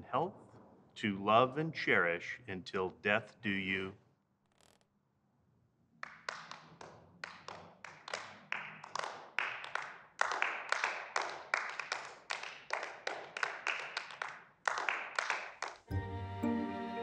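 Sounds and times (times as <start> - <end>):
people clapping: 6.0 - 16.0.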